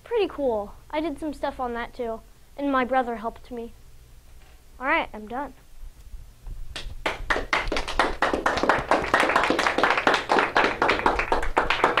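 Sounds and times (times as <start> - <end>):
audience applauding: 6.8 - 12.0.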